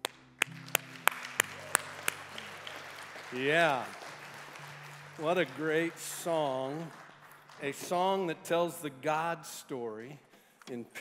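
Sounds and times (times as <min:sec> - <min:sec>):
low keyboard pad chord: 0:00.4 - 0:08.7.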